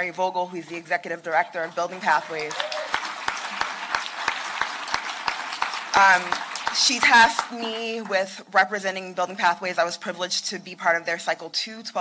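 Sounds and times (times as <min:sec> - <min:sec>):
audience applauding: 0:01.9 - 0:08.0.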